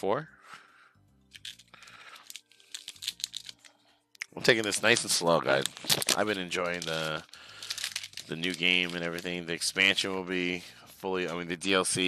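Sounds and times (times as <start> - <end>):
foil wrapper crinkling: 1.4 - 3.7, 4.4 - 10.6.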